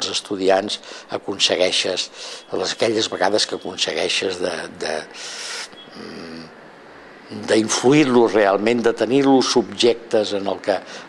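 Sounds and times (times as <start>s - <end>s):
man breathing in: 0.8s - 1.1s, 2.1s - 2.5s, 5.2s - 5.8s
man humming hesitantly: 5.5s - 6.6s.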